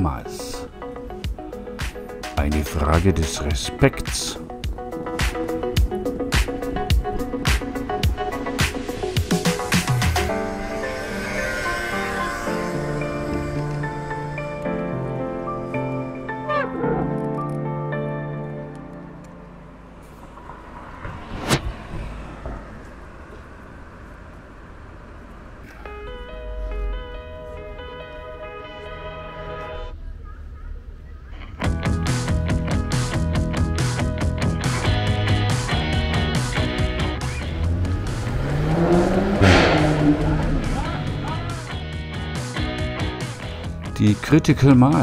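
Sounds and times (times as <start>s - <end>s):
street traffic noise: 0.0s - 16.6s, 17.2s - 45.0s
background music: 0.0s - 20.2s, 25.8s - 30.0s, 31.6s - 45.0s
car engine revving: 4.8s - 15.9s, 19.6s - 30.1s, 33.9s - 43.5s
vehicle low rumble: 18.9s - 32.8s, 36.6s - 42.3s.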